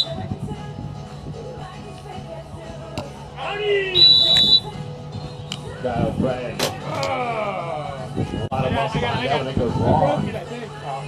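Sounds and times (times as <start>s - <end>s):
voices: 1.6s - 11.0s
referee's whistle blast: 3.9s - 4.8s.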